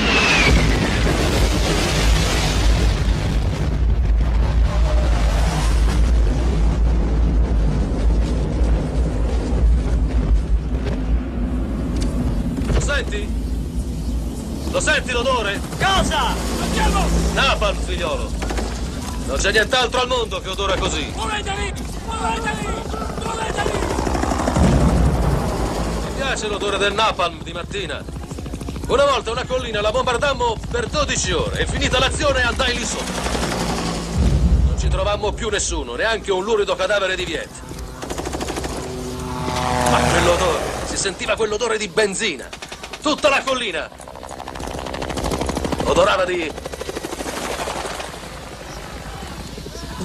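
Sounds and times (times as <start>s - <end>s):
helicopter rotor beating: 0.0s - 50.0s.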